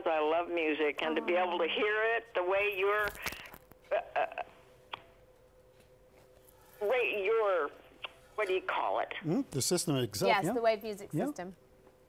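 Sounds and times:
faint telephone line hum: 0:00.0 - 0:12.0.

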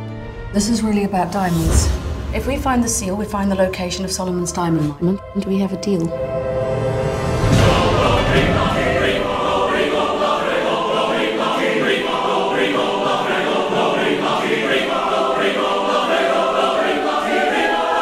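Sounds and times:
choir singing trailer music: 0:00.0 - 0:18.0.

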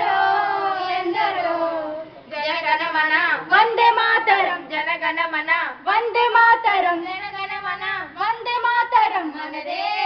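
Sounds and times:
girls singing together: 0:00.0 - 0:02.3, 0:09.3 - 0:10.0.

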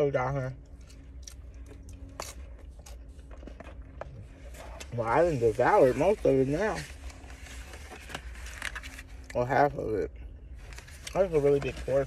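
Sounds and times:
low steady hum: 0:00.0 - 0:12.0
quiet chewing: 0:00.6 - 0:05.0.

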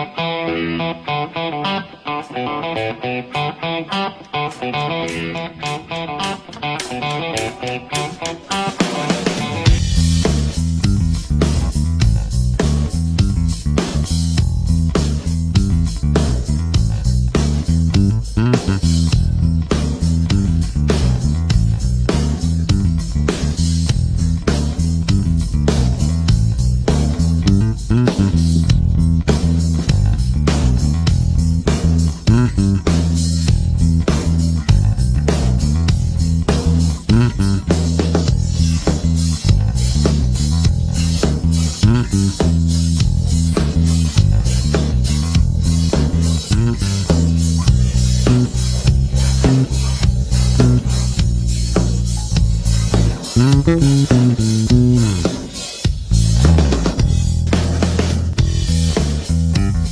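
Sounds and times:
funk bass guitar line: 0:00.0 - 0:59.9.

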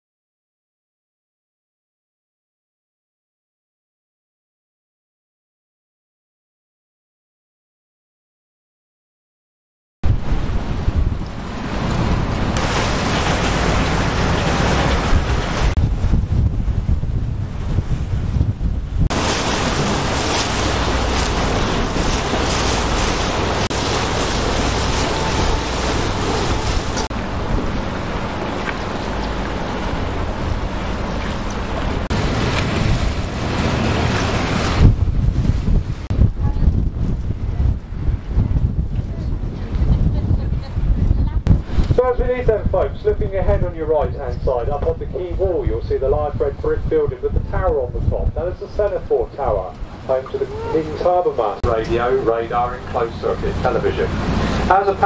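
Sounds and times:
rushing water: 0:10.0 - 0:37.1, 0:44.2 - 0:55.0
wind buffeting microphone: 0:10.0 - 0:55.0.

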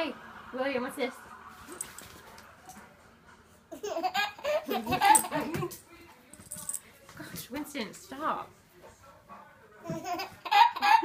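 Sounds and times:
baby laughing: 0:03.7 - 0:05.7, 0:09.8 - 0:11.0.

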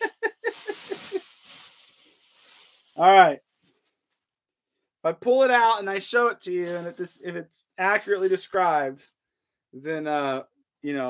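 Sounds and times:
man laughing hard: 0:00.0 - 0:01.2.

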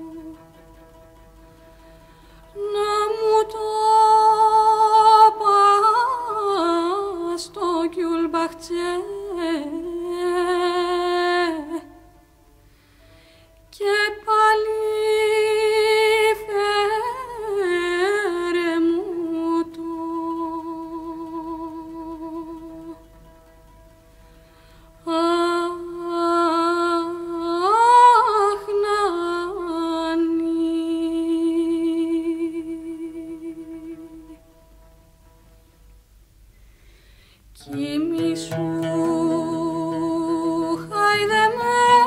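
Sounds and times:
faint steady accompanying tone: 0:00.0 - 0:42.0
woman singing a lullaby: 0:02.6 - 0:11.9, 0:13.7 - 0:23.1, 0:25.0 - 0:34.4, 0:37.6 - 0:42.0.

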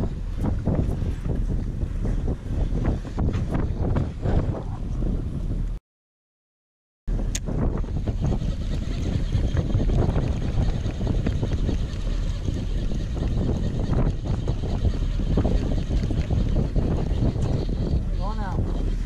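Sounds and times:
wind buffeting microphone: 0:00.0 - 0:05.8, 0:07.1 - 0:19.0.

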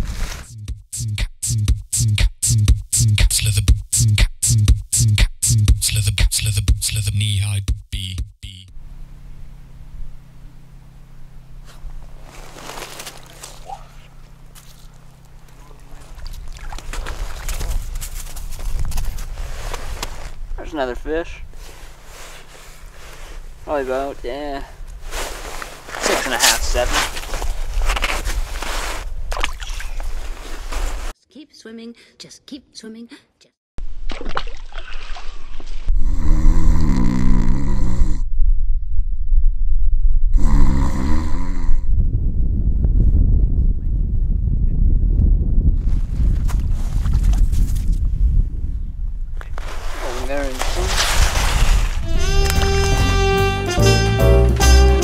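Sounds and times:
man's wavering wordless vocal: 0:00.8 - 0:08.7
rustling and handling noises: 0:11.7 - 0:16.2, 0:49.6 - 0:52.9
wind rumble on microphone: 0:15.8 - 0:21.9, 0:37.8 - 0:52.9
low rumble: 0:38.0 - 0:40.6, 0:41.7 - 0:46.9.

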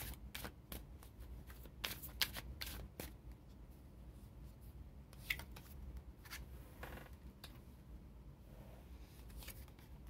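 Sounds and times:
cards shuffled by hand: 0:00.0 - 0:03.2, 0:05.2 - 0:06.5.

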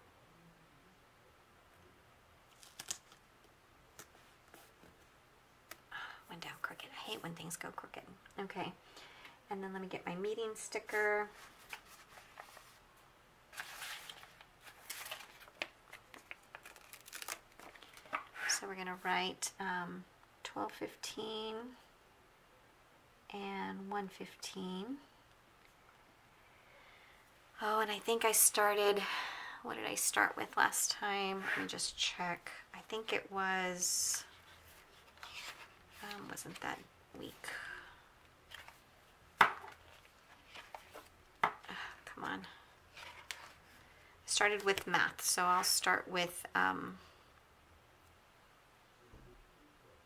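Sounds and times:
paper rustling and crinkling: 0:02.5 - 0:03.2, 0:11.2 - 0:12.8, 0:13.5 - 0:18.4, 0:34.3 - 0:36.6, 0:38.5 - 0:38.8, 0:39.5 - 0:41.2, 0:42.9 - 0:43.8.

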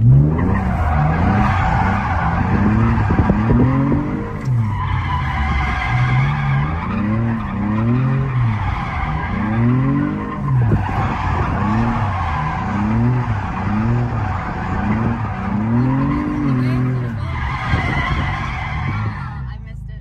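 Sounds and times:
car engine revving: 0:00.0 - 0:20.0
tyres squealing: 0:00.1 - 0:19.5.

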